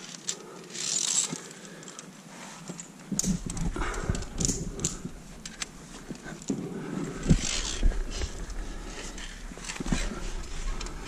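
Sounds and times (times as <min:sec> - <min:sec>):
carabiners clicking on iron rungs: 0:00.0 - 0:11.0.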